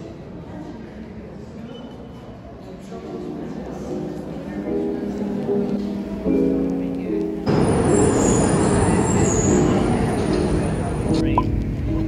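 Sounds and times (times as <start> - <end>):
train wheels rumbling on rails: 7.4 - 12.0.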